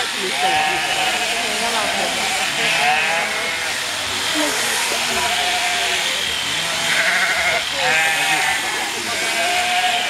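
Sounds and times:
sheep bleating: 0.3 - 3.8, 5.0 - 10.0.

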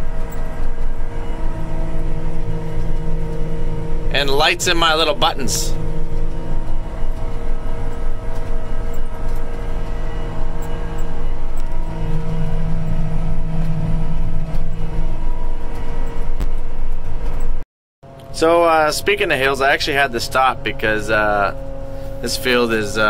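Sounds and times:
sprayer engine droning: 0.0 - 16.5, 18.1 - 23.0.

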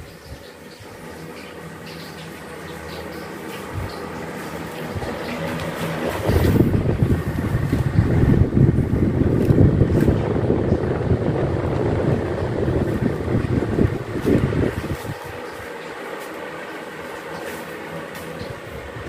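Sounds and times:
electric fans humming: 0.0 - 19.0
wind noise on microphone: 3.7 - 4.0, 4.9 - 15.7.

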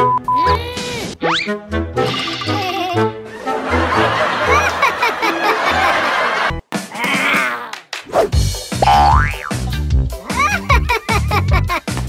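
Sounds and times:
upbeat backing music: 8.2 - 12.0
springy boing tones: 8.8 - 9.6.

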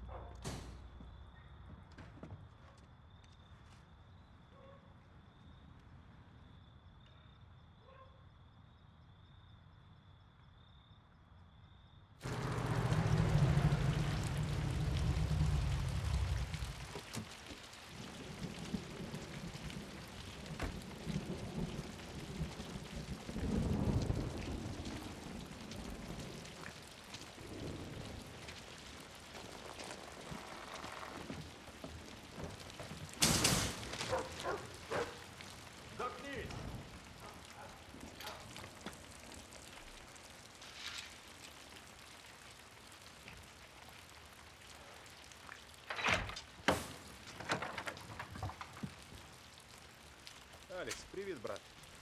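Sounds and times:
deep rumble: 12.2 - 17.1
steady rain falling: 12.2 - 52.0.

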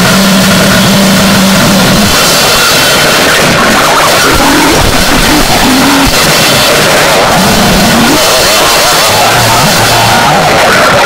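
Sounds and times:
wavering low tones: 0.0 - 10.6
harsh distorted noise music: 0.0 - 11.0.

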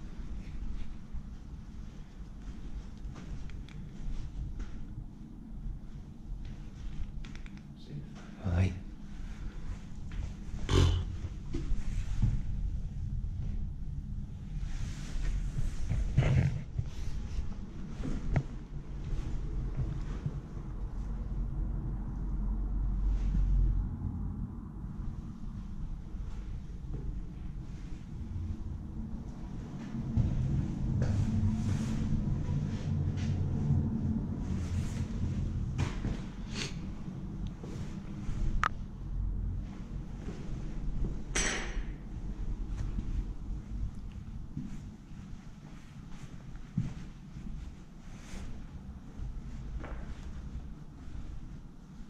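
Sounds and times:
low rumble: 7.9 - 52.0
sharp clink: 41.4 - 42.0.

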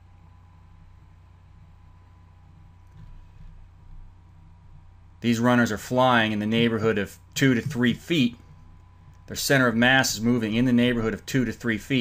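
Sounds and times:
slight low rumble: 0.0 - 11.9
faint high whine: 0.0 - 12.0
low electrical hum: 0.0 - 12.0.

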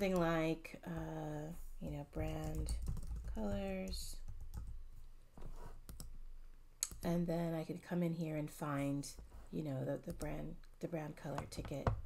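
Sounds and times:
computer keyboard keystrokes: 2.2 - 4.8.

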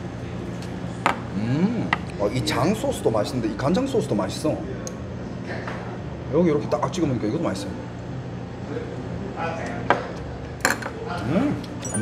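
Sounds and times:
bowl and chopsticks clinking: 11.6 - 12.0.

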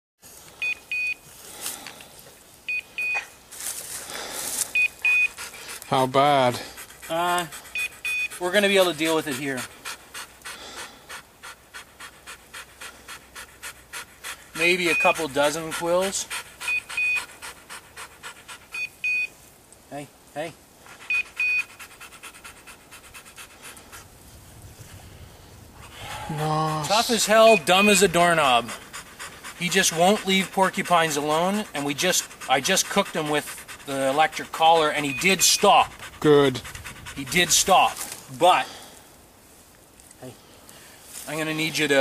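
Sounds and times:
dog collar double beep: 0.6 - 1.2, 2.7 - 3.3, 4.8 - 5.3, 7.8 - 8.3, 16.7 - 17.2, 18.8 - 19.3, 21.1 - 21.7
scuffling noise: 3.5 - 4.8
dog panting: 4.0 - 19.2, 20.8 - 24.2, 25.7 - 38.9.

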